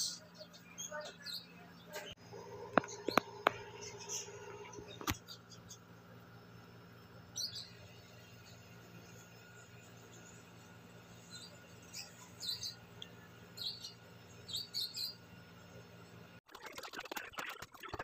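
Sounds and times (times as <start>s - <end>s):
low steady hum: 0.0s - 16.4s
bird chirping: 7.3s - 15.3s.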